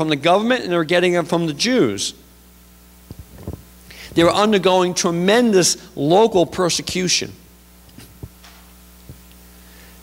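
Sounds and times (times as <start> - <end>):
sound system hum: 0.0 - 10.0.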